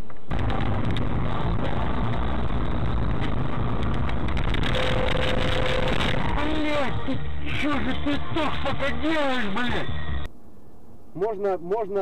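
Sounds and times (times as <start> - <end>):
steady tone: 0.0 - 11.2
car engine and road noise: 0.0 - 11.3.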